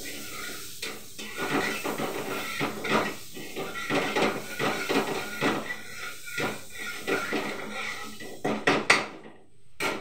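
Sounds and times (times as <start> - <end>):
spatula scraping metal wok: 0.0 - 8.7.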